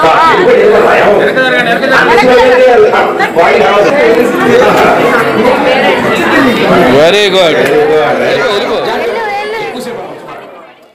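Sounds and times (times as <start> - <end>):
children chattering: 0.0 - 10.9.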